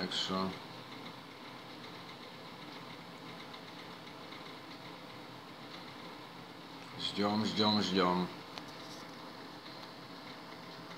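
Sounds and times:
microwave oven humming: 0:00.0 - 0:10.9.

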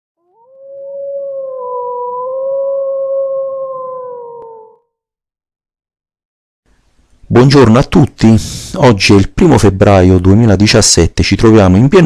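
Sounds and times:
wolf howling: 0:00.2 - 0:04.9.

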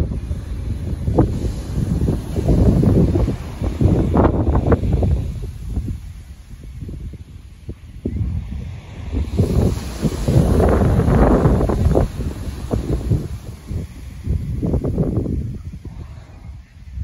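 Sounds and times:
wave breaking on stony beach: 0:00.0 - 0:07.6, 0:08.2 - 0:16.5
wind buffeting microphone: 0:00.0 - 0:17.0.

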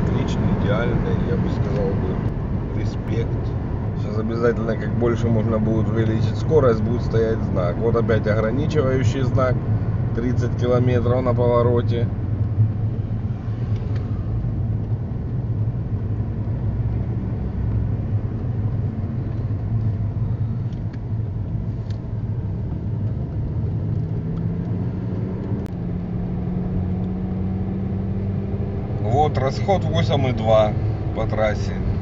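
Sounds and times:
car road and engine rumble: 0:00.0 - 0:32.0.

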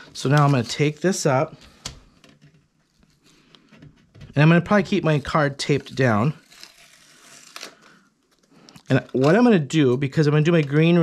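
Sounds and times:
person speaking: 0:00.0 - 0:01.6, 0:04.3 - 0:06.4, 0:08.8 - 0:11.0
tape and plastic stencil crinkling: 0:00.0 - 0:11.0.

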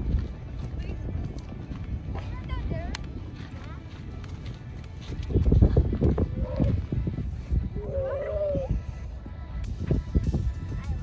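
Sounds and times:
running footsteps thumping: 0:00.0 - 0:07.3
wind on microphone: 0:00.0 - 0:11.0.

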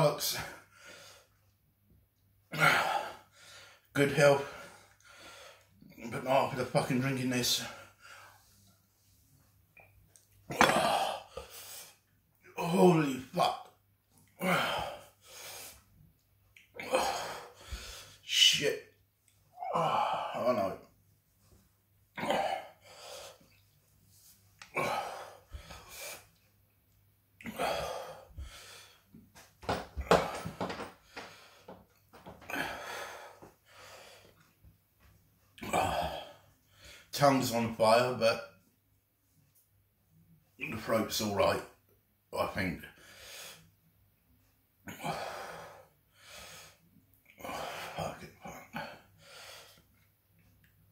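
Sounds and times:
man coughing: 0:10.5 - 0:11.2, 0:22.2 - 0:22.7.

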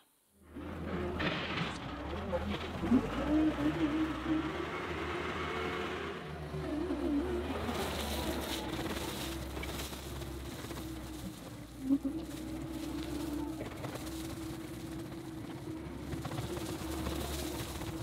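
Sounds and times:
diesel engine running: 0:00.4 - 0:18.0
tracks driving across gravel: 0:00.4 - 0:18.0.

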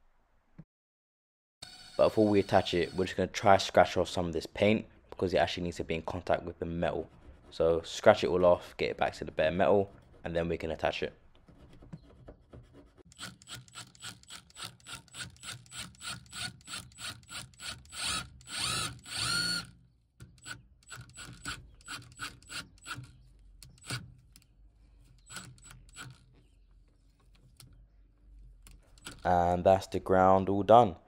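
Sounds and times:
impact driver running: 0:01.6 - 0:03.2, 0:13.1 - 0:19.8.

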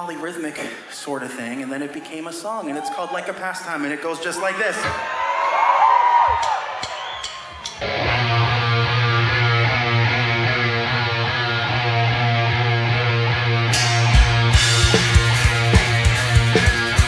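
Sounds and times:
electric guitar riff: 0:07.8 - 0:17.0.

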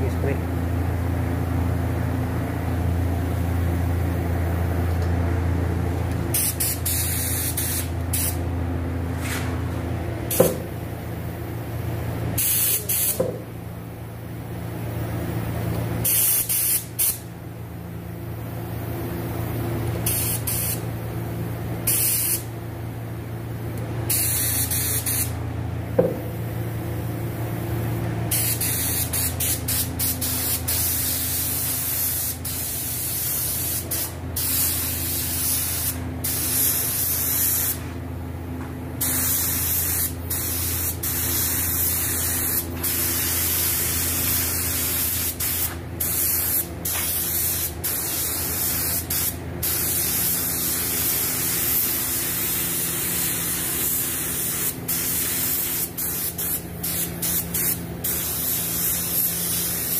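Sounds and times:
steady low hum: 0:00.0 - 0:59.9
spray gun hissing: 0:06.3 - 0:08.4, 0:24.1 - 0:25.3, 0:28.3 - 0:37.8, 0:39.0 - 0:59.9.

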